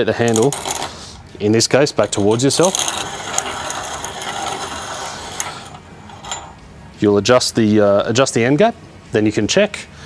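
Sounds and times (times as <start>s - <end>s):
abrasive wheel grinding metal: 2.0s - 6.6s.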